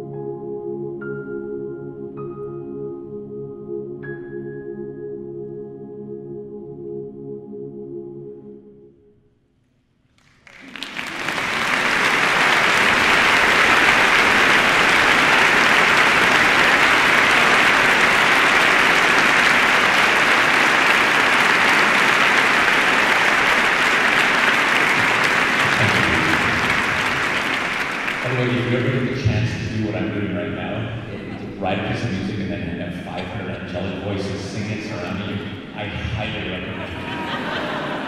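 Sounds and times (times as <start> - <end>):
audience applauding: 10.2 - 32.3, 33.1 - 38.0.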